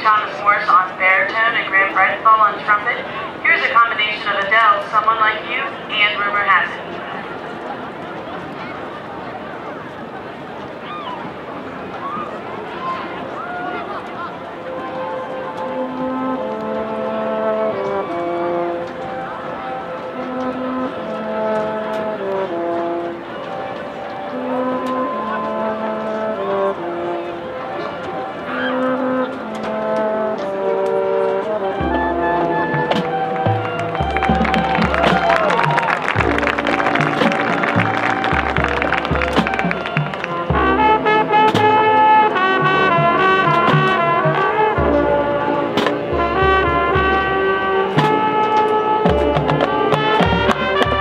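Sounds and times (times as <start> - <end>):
marching band brass and woodwinds: 0.0 - 51.0.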